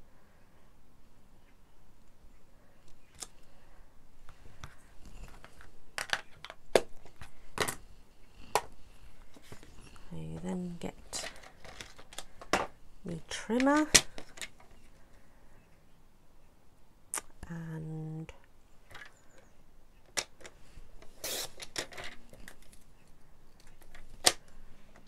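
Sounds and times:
woman's voice: 10.0s - 11.4s, 13.0s - 14.1s, 17.4s - 18.4s.

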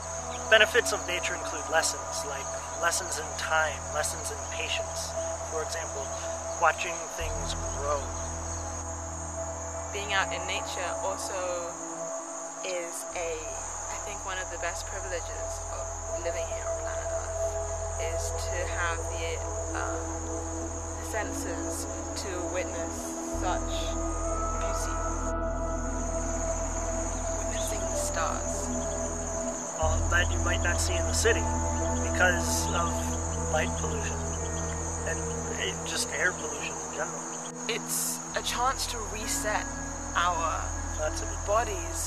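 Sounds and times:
high-pitched insect trill: 0.0s - 42.0s
low steady hum: 12.6s - 37.2s.

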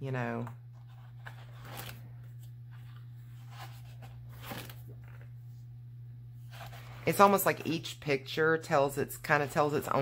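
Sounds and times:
steady low hum: 0.0s - 10.0s
paper page rustling: 0.8s - 5.3s, 6.4s - 7.3s.

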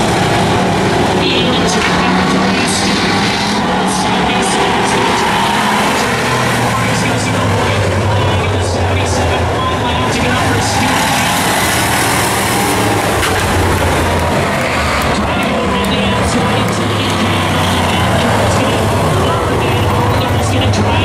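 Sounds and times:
announcer over public address: 0.0s - 21.0s
stock car engines racing: 0.0s - 21.0s.

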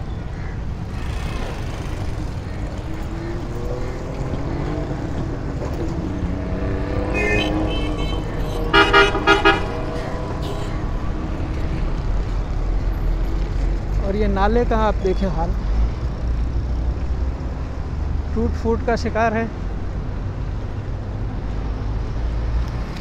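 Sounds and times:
street traffic rumble: 0.0s - 23.0s
vehicle horn short beeps: 7.1s - 9.8s.

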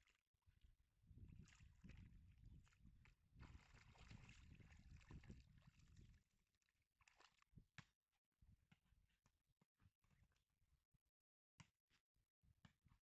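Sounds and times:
puppy splashing through water: 1.3s - 6.2s.

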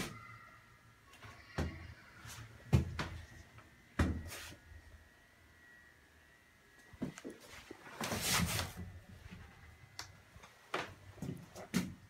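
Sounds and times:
faint high whine: 0.0s - 11.7s.

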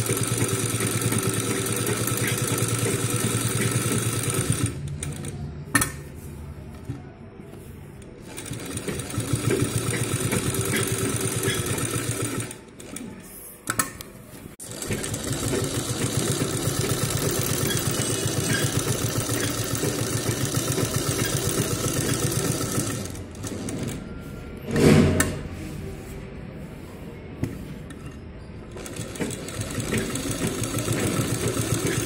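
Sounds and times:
sewing machine stitching: 0.0s - 5.4s, 8.2s - 13.2s, 14.6s - 24.0s, 28.7s - 32.0s.

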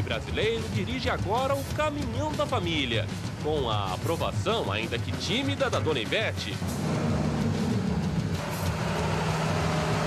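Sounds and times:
truck engine running: 0.0s - 10.0s
road noise: 4.8s - 10.0s.

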